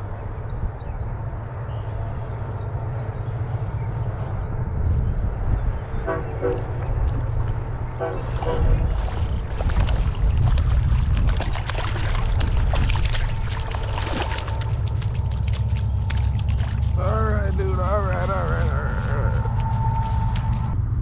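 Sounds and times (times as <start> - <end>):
wind rumble on microphone: 0.0 - 21.0
fish splashing at surface: 8.3 - 20.7
crackling: 13.6 - 20.8.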